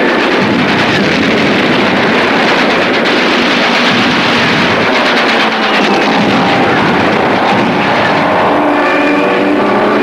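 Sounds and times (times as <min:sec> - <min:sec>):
loud steady engine drone: 0:00.0 - 0:10.0
rushing noise: 0:00.0 - 0:10.0.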